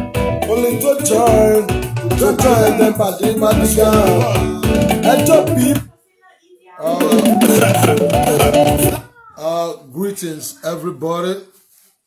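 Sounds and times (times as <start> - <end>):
man calling out: 0.6 - 5.9, 6.8 - 11.1.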